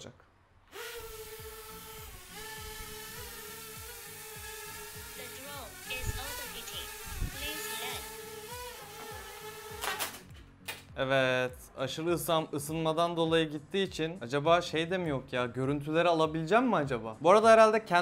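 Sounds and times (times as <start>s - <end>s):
drone propellers buzzing: 0.7s - 10.3s.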